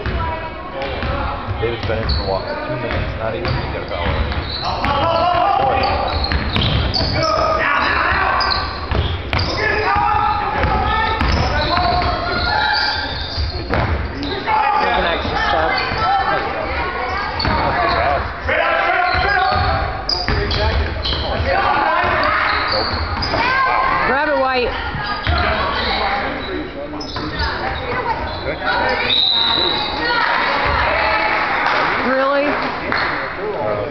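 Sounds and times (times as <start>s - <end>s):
basketball bouncing on court: 0.0s - 2.2s, 2.8s - 7.2s, 8.1s - 12.6s, 13.5s - 14.1s, 19.1s - 22.3s.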